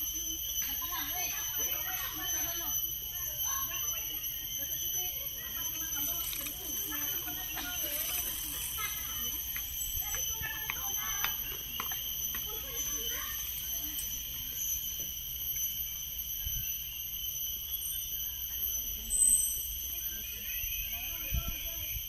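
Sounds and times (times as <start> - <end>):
forest insects droning: 0.0 - 22.0
loud high chirp: 6.0 - 22.0.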